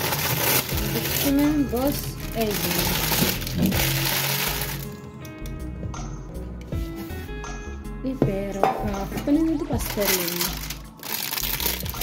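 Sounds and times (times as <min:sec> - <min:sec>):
baking paper rustling: 0:00.0 - 0:04.9, 0:09.8 - 0:12.0
background music: 0:00.0 - 0:12.0.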